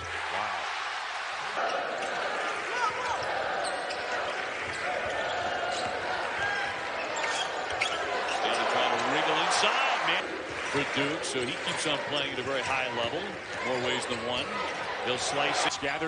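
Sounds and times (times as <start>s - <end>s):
arena crowd noise: 0.0s - 16.0s.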